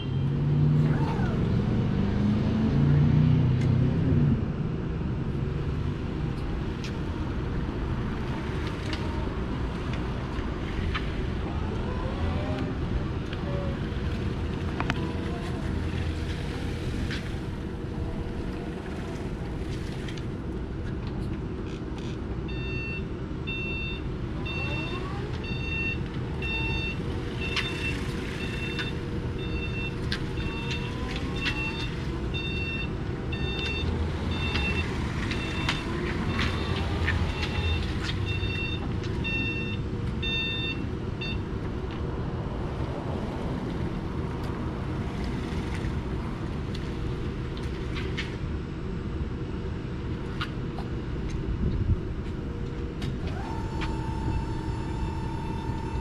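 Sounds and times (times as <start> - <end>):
forklift reversing alarm beeping: 22.5 - 41.5, 53.4 - 56.0.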